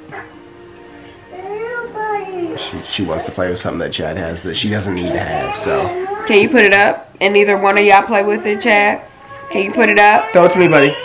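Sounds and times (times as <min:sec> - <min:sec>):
young child whiny cry: 0:05.0 - 0:06.5.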